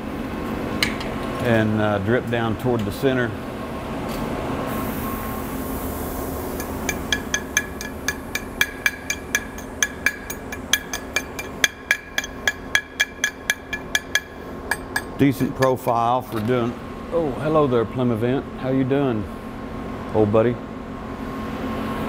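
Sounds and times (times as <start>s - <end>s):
hammer tapping on metal: 6.6s - 15.8s.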